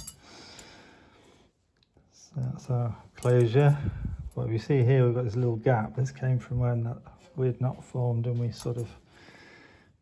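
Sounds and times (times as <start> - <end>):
faint breath out: 9.1 - 10.0.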